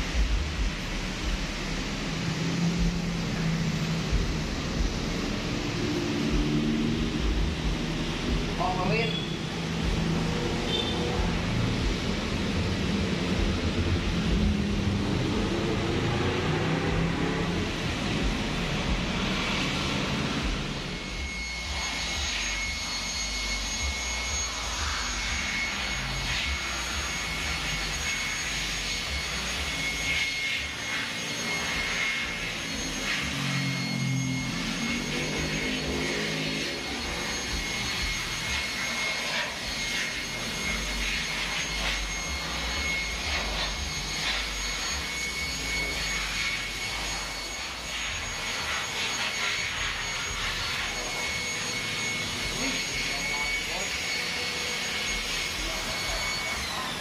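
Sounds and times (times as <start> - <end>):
electric machine whining: 0.0 - 57.0.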